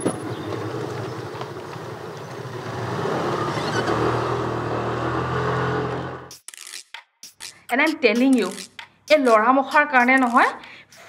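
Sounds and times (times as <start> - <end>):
scooter engine revving: 0.0 - 6.3.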